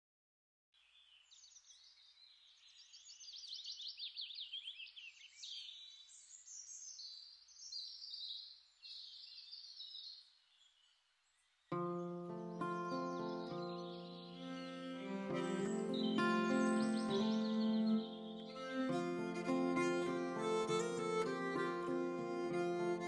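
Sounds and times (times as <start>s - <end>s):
songbirds trilling and chirping: 0.8s - 18.9s
music with held notes: 11.8s - 23.0s.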